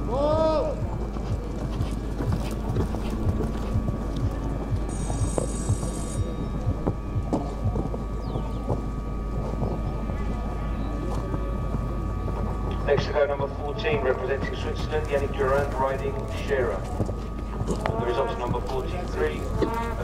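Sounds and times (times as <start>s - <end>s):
horse hoofbeats on sand: 0.3s - 12.5s, 14.4s - 20.0s.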